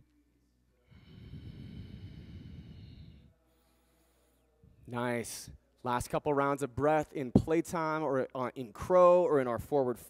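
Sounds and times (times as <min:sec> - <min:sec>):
breath blowing into microphone: 0:00.9 - 0:03.4.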